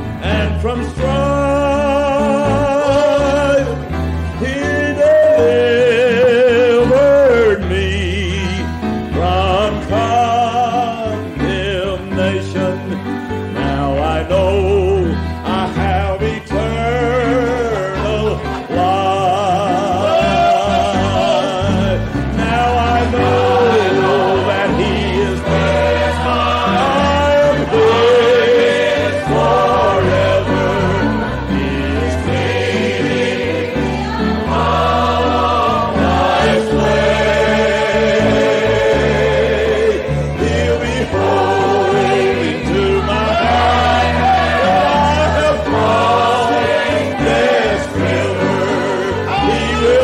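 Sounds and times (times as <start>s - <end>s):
gospel singing: 0.0s - 50.0s
instrumental accompaniment: 0.0s - 50.0s.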